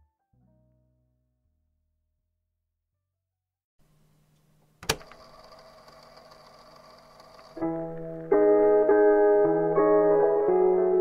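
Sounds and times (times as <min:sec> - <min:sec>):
music chords: 0:07.6 - 0:11.0.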